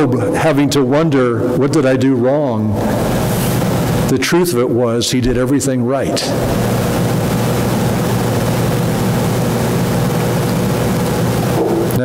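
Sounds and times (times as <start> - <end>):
loud droning hum: 0.0 - 12.0.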